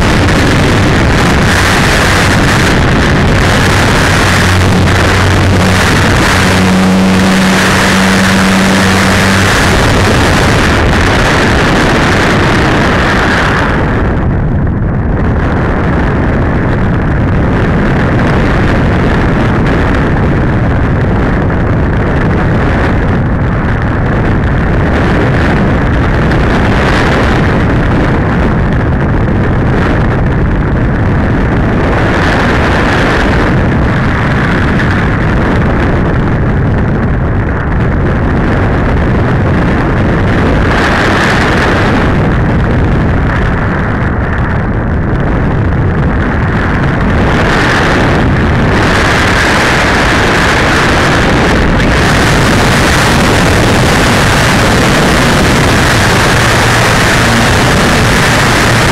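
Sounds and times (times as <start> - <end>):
air rushing over microphone: 0.0 - 58.9.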